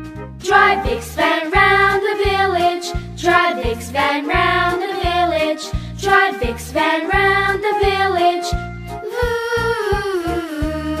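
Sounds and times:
children's song backing: 0.4 - 11.0.

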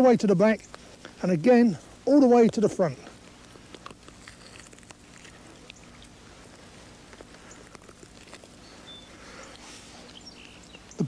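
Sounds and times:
steady low hum: 0.0 - 11.0
small wet clicks and rustles: 2.3 - 11.0.

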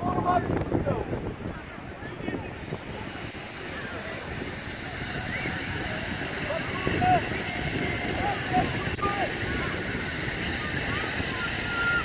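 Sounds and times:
distant shouts and calls: 0.0 - 12.0
wind rumbling on microphone: 0.0 - 12.0.

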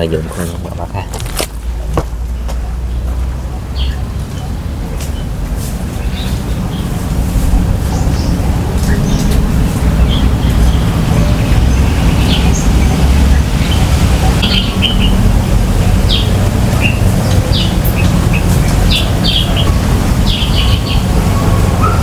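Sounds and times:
wild birds chirping: 0.0 - 22.0
wind rumble on microphone: 4.7 - 22.0.

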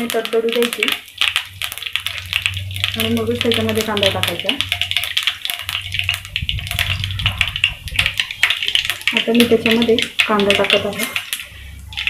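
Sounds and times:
seeds sizzling in hot oil: 0.0 - 12.0.

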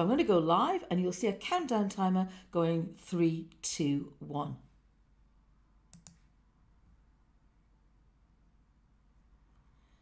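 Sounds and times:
computer mouse clicking: 5.9 - 6.3.

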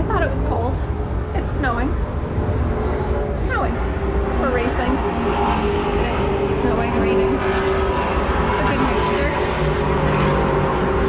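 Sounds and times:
race car engines: 0.0 - 11.0
steady low rumble: 0.0 - 11.0.

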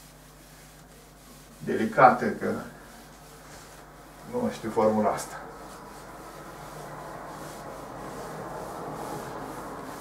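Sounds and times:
cloth wiping a chalkboard: 0.0 - 10.0.

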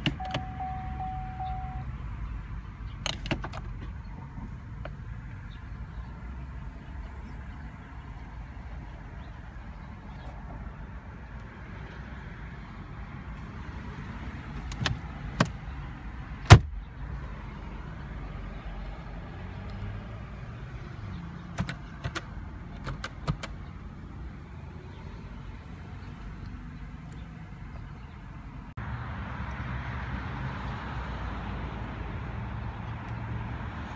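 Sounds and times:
car button clicks: 0.0 - 1.8
car cabin hum: 0.0 - 1.9.

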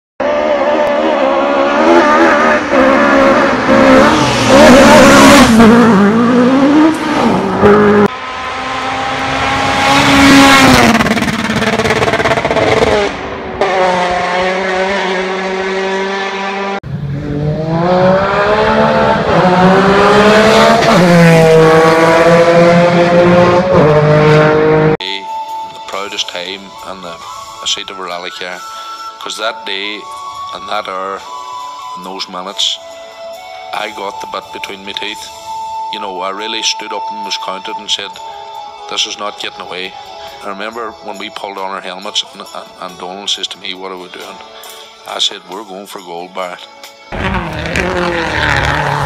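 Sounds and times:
rally car engines revving: 0.2 - 25.0, 47.1 - 49.0.

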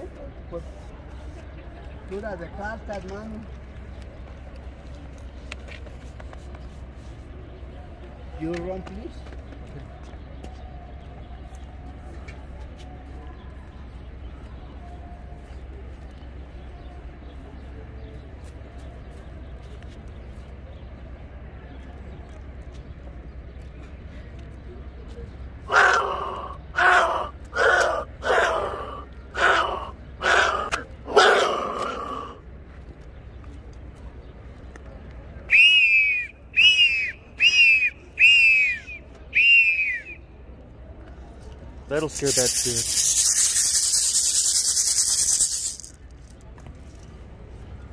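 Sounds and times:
street background: 0.0 - 47.9
whistle blasts: 35.5 - 40.2.

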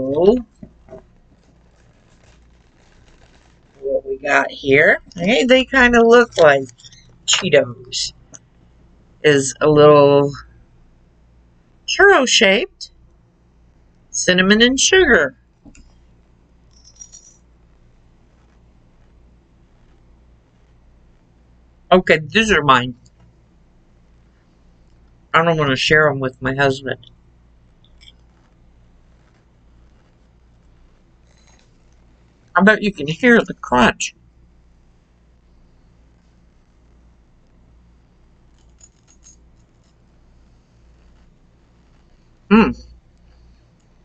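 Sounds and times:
faint low hum: 0.0 - 44.0.

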